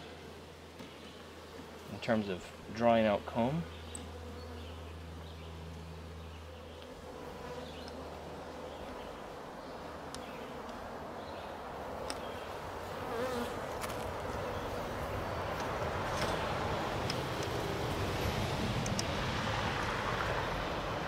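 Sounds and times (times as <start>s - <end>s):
honeybees buzzing: 0.0s - 21.0s.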